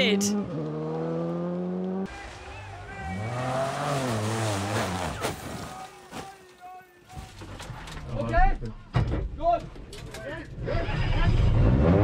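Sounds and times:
rally car engine: 0.0 - 6.1, 10.3 - 12.0.

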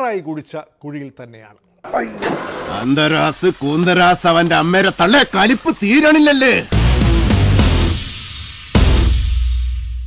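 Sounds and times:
man speaking: 0.0 - 6.8
noisy hiss: 2.4 - 9.1.

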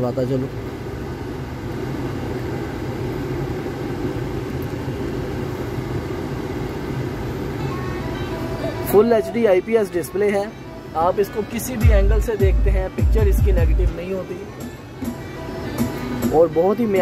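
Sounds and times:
car idling hum: 0.0 - 17.0
car radio music: 5.1 - 17.0.

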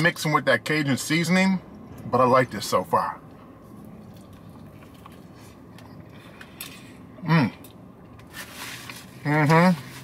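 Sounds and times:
low steady hum: 0.0 - 10.0
man chewing food: 3.9 - 6.8.

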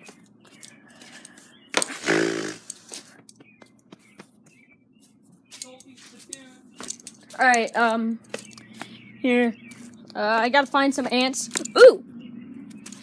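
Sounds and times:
short vocal hum: 1.9 - 2.7.

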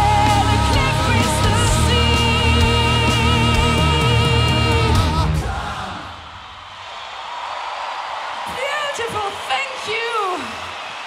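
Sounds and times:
crowd cheering and applauding: 0.0 - 11.0.

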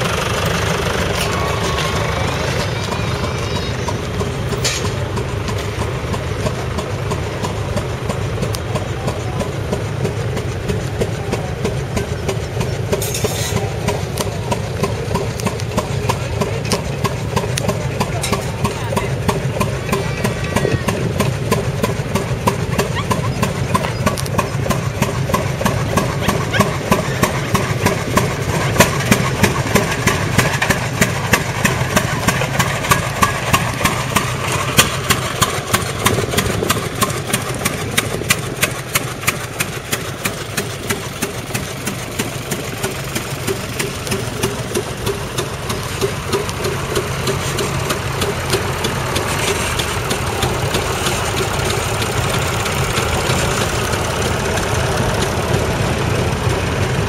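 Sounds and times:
tractor engine running: 0.0 - 57.0
sharp engine knocks: 9.6 - 56.5.

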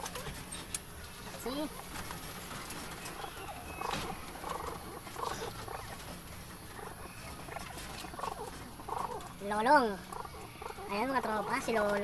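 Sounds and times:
pigeons cooing: 0.0 - 12.0.

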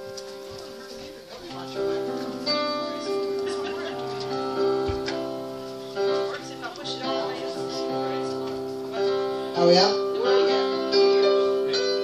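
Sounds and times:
church band music: 0.0 - 12.0.

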